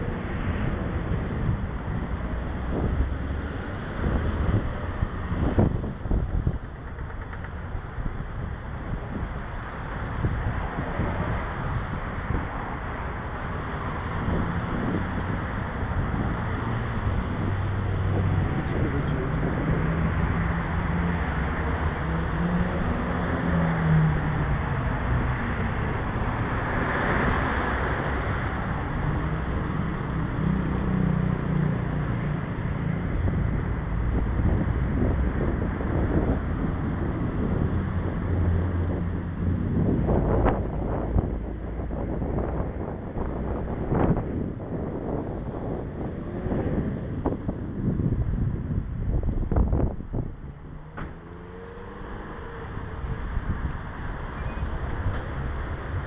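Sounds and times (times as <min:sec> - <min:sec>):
passing road traffic: 0:00.0 - 0:56.0
wind on microphone: 0:00.0 - 0:56.0.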